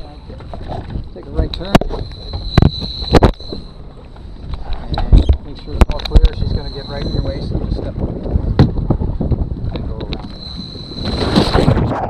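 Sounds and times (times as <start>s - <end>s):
wind on microphone: 0.0s - 12.0s
low rumble: 0.4s - 12.0s.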